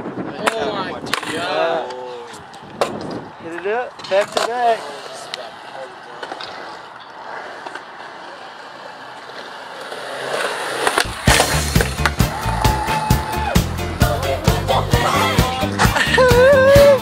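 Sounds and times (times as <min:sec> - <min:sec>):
skateboard wheels rolling on concrete: 0:00.0 - 0:17.0
music with heavy beat: 0:11.1 - 0:17.0.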